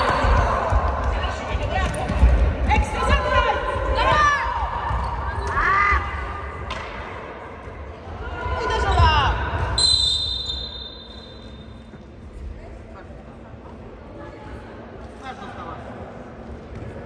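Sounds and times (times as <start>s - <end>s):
long high whistle: 9.8s - 11.6s
sneaker squeaks on floor: 9.8s - 12.0s.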